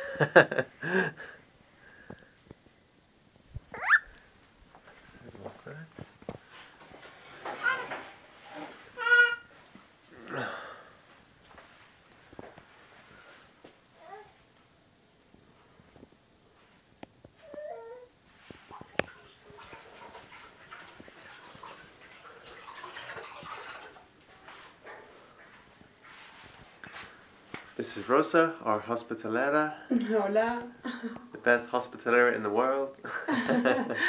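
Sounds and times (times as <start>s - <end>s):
small animal high-pitched call: 3.7s - 4.1s
baby squealing: 3.7s - 4.2s, 8.6s - 9.5s.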